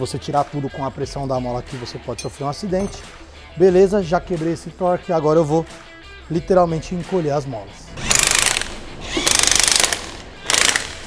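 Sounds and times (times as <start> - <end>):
impact wrench hammering: 2.2 - 3.1, 8.1 - 11.0.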